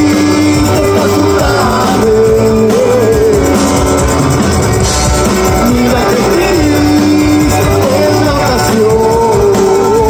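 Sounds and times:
drum kit: 0:00.0 - 0:10.0
electric guitars: 0:00.0 - 0:10.0
man singing lead vocal: 0:00.0 - 0:10.0.

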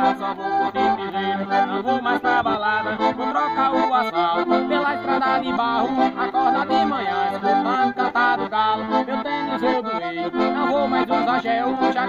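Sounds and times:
piano accordion playing: 0:00.0 - 0:12.0.

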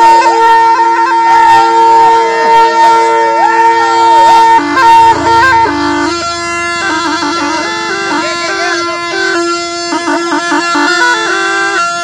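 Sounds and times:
gourd wind instrument melody: 0:00.0 - 0:12.0.

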